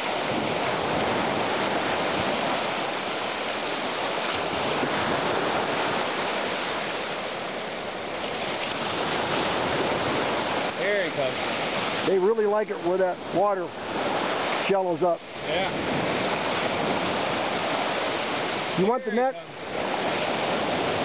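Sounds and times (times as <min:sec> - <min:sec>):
lake waves washing onto beach: 0:00.0 - 0:21.0.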